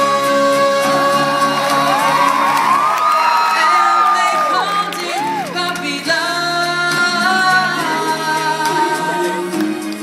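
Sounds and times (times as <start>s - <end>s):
live pop song: 0.0s - 10.0s
audience screaming and whooping: 1.1s - 6.0s.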